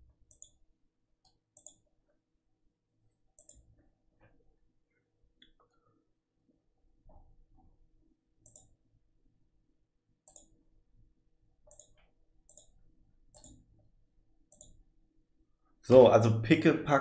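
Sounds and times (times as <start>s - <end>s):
computer mouse clicks: 0.2s - 0.6s, 1.2s - 1.9s, 3.3s - 4.4s, 8.4s - 8.8s, 10.2s - 10.6s, 11.6s - 13.9s, 14.5s - 14.8s.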